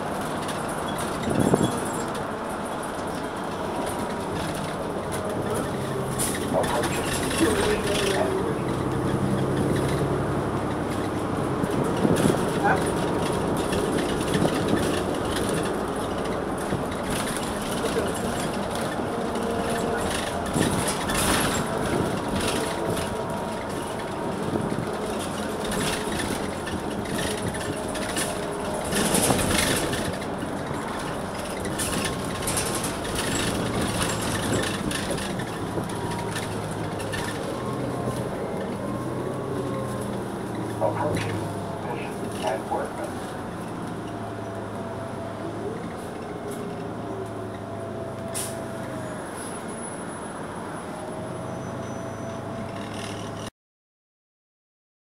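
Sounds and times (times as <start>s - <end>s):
bus engine running: 0.0s - 53.5s
rattles and knocks: 0.2s - 38.8s.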